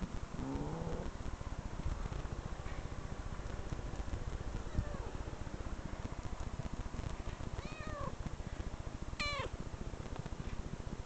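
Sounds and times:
steady low rumble: 0.0 - 11.0
cat meowing: 7.6 - 8.1, 9.2 - 9.5.

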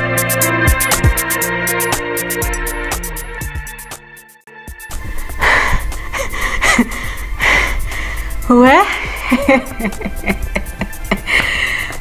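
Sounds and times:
woman breathing hard: 5.2 - 9.5, 11.0 - 12.0.

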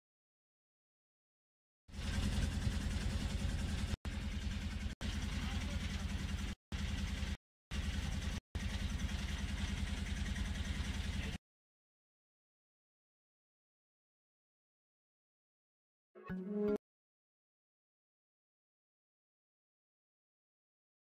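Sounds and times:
boat engine running: 1.9 - 11.4.

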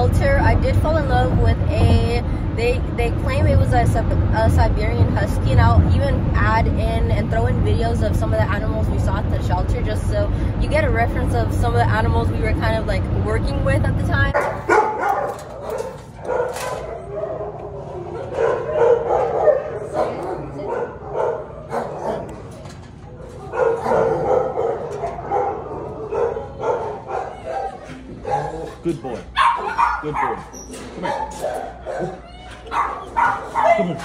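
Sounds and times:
dogs barking and yipping: 14.3 - 34.0.

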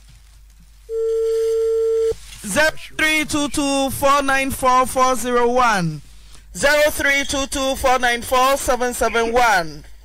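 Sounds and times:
telephone line beep: 0.9 - 2.2.

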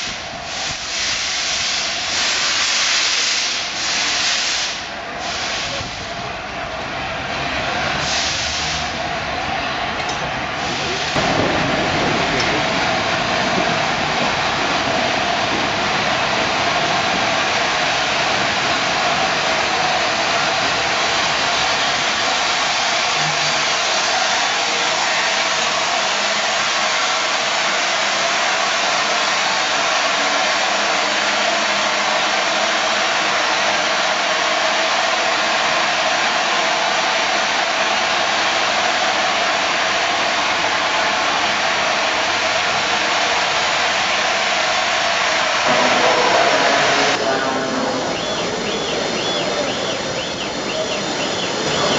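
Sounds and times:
steam hissing from safety valves: 0.0 - 6.3, 7.9 - 9.0, 10.1 - 11.5, 15.7 - 35.8, 45.4 - 51.9.

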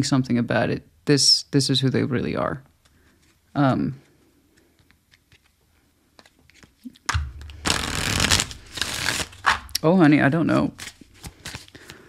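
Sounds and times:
cards being shuffled: 4.5 - 9.9, 10.5 - 12.0.

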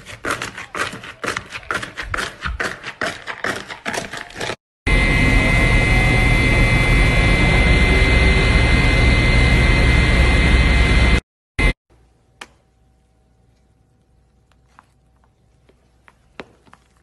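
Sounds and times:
factory machinery whining: 4.9 - 11.8.

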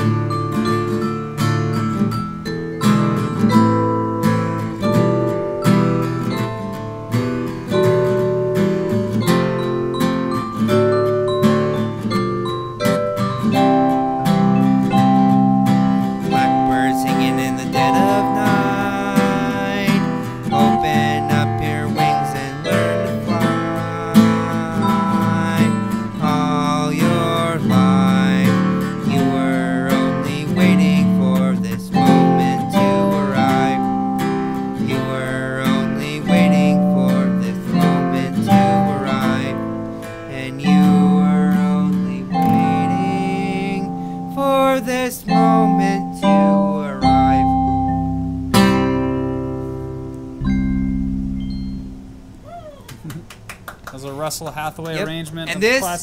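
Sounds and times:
electronic keyboard chords: 0.0 - 52.8
acoustic guitar picking: 0.0 - 56.0.

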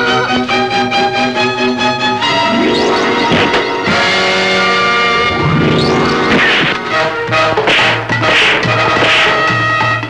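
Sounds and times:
action background music: 0.0 - 10.0.

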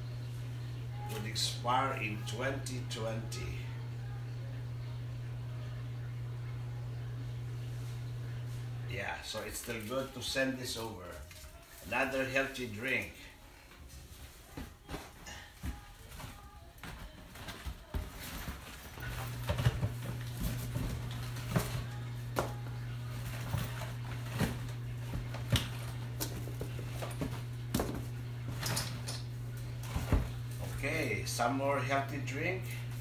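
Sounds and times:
steady low hum: 0.0 - 11.3, 11.9 - 33.0.

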